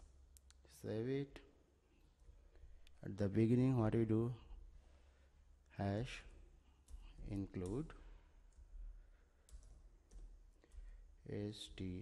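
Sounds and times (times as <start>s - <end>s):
faint keyboard keystrokes: 6.2s - 11.0s.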